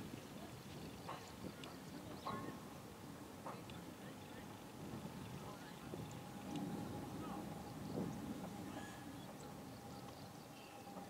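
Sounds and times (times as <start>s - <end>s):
outdoor ambience: 0.0s - 11.0s
distant voices: 0.2s - 11.0s.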